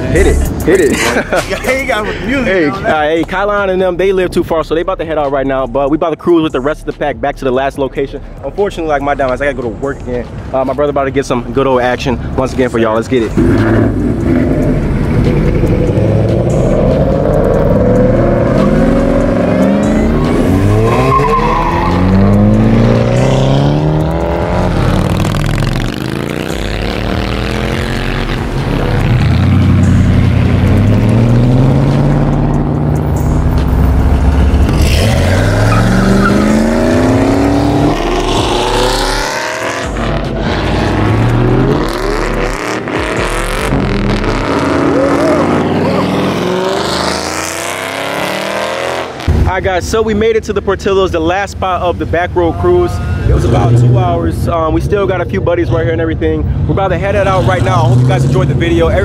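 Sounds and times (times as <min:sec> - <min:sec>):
car engines revving: 0:00.0 - 0:59.0
tyre squeal: 0:19.9 - 0:22.5, 0:34.9 - 0:36.8.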